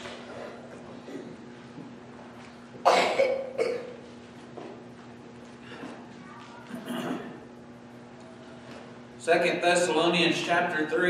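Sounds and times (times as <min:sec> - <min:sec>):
man coughing: 0:02.8 - 0:04.0, 0:06.8 - 0:07.4.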